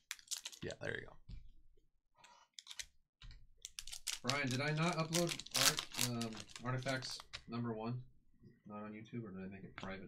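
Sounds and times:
foil wrapper crinkling: 0.0s - 0.7s, 3.7s - 7.3s.

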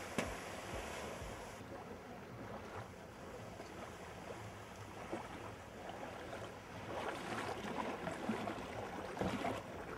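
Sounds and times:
rushing splashing water: 5.0s - 9.9s.

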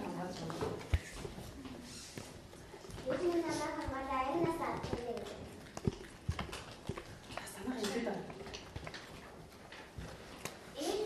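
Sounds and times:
classroom noise: 0.0s - 6.6s, 7.5s - 11.0s.

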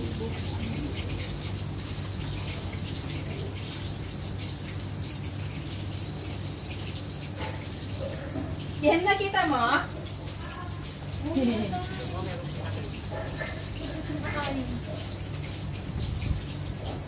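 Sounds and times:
people talking: 8.8s - 13.0s, 13.8s - 15.0s.

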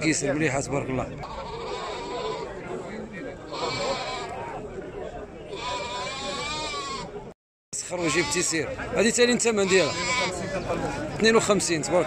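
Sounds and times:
crowd murmur: 0.0s - 12.0s
rams bleating: 1.2s - 2.6s, 3.5s - 4.4s, 5.5s - 7.1s, 7.9s - 8.6s, 9.6s - 10.4s.

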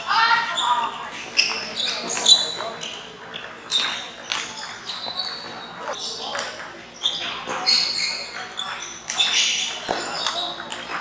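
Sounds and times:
table tennis balls clicking: 0.9s - 11.0s.

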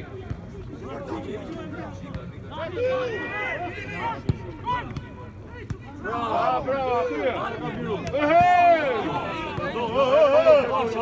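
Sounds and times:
voices shouting outdoors: 0.0s - 11.0s.

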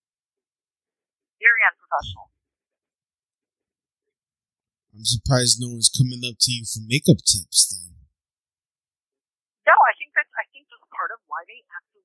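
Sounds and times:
voice over telephone line: 1.4s - 2.2s, 5.0s - 8.0s.

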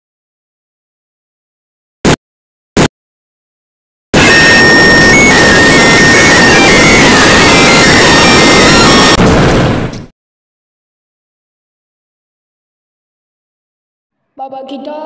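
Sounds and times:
loud distorted noise: 4.2s - 10.0s.

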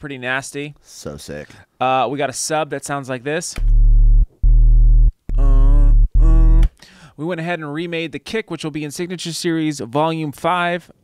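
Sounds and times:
deep synthesized sub bass: 3.6s - 6.7s.

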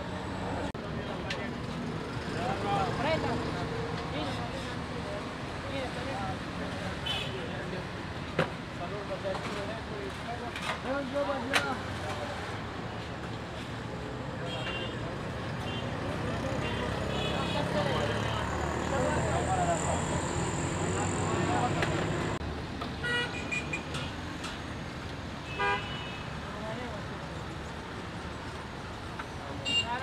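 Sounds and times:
passing road traffic: 0.0s - 30.0s
background chatter: 13.6s - 22.4s
vehicle horn toot: 25.5s - 26.2s.

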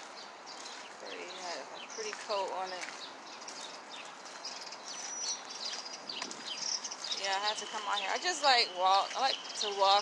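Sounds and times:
outdoor background hiss: 0.0s - 10.0s
small birds chirping: 0.0s - 10.0s.

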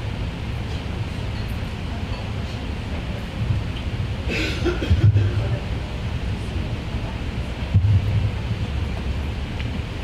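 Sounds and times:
microphone thump: 4.9s - 5.3s, 7.7s - 8.4s
microphone handling rumble: 4.9s - 5.9s, 7.6s - 9.9s.

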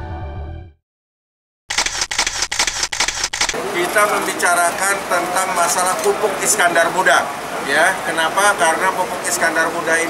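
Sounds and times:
camera shutter clicks: 1.7s - 3.6s.

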